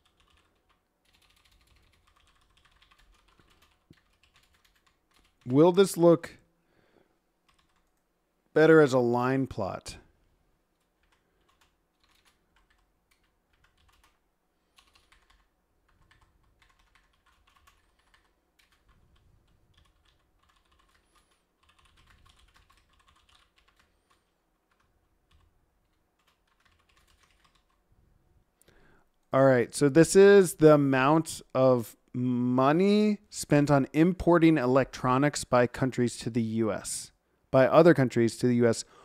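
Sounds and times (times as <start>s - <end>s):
computer keyboard typing: 0.0s - 5.6s, 7.5s - 8.0s, 10.8s - 14.2s, 14.8s - 27.8s.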